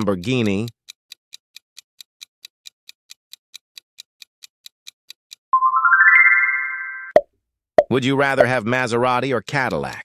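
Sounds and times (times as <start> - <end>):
rising chime notes: 5.6 - 7.2.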